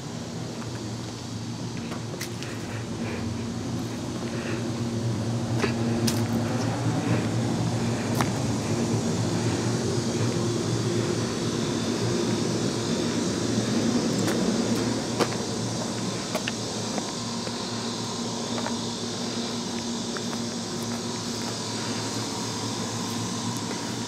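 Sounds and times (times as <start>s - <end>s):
air conditioner unit humming: 0.0s - 24.0s.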